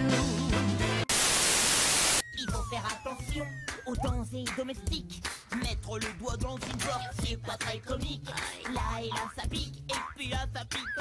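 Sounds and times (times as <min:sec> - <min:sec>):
white-noise static burst: 0:01.1 - 0:02.2.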